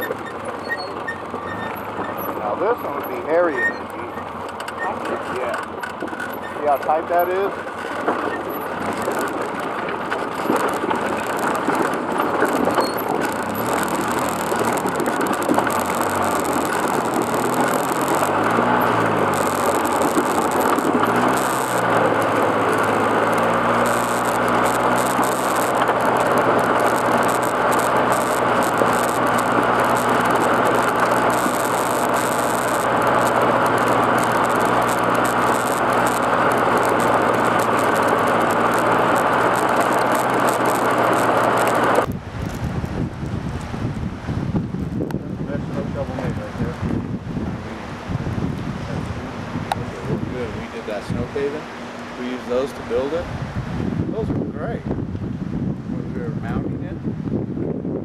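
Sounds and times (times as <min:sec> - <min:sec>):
atv engine running: 0:00.0 - 0:58.0
road noise: 0:00.0 - 0:58.0
wind noise: 0:08.2 - 0:58.0.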